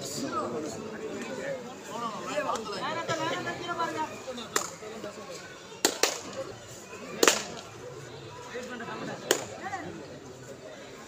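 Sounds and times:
faint background voices: 0.0 - 11.0
sharp hand slaps: 5.8 - 6.3, 7.2 - 7.6, 9.3 - 9.5.

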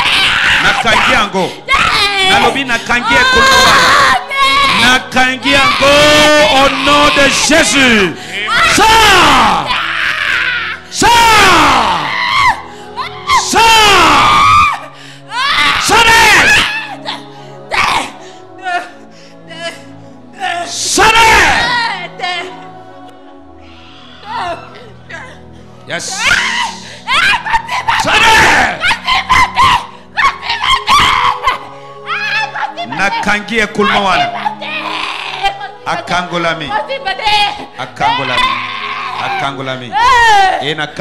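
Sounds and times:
woman screaming: 0.0 - 19.0, 20.4 - 22.7, 23.7 - 25.4, 26.1 - 40.8.

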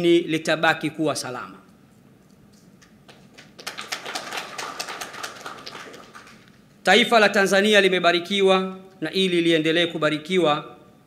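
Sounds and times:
light scattered clapping: 2.8 - 6.7.

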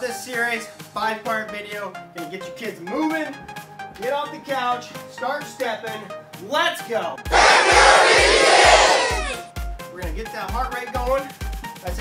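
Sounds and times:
crowd-like shouting: 7.3 - 9.5.

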